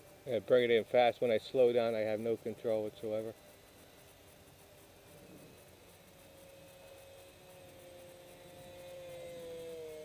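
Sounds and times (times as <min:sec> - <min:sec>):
model jet electric motors whining: 0:00.0 - 0:10.0.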